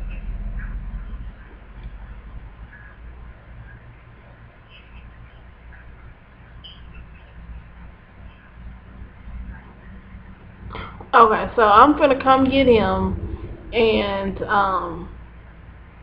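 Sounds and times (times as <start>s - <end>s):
low room rumble: 0.0s - 16.0s.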